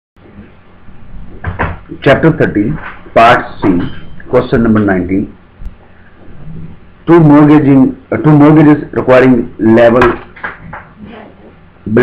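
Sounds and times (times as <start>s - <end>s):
low hum: 0.2s - 9.8s
room hiss: 0.2s - 12.0s
man talking: 1.9s - 5.4s, 6.5s - 10.4s.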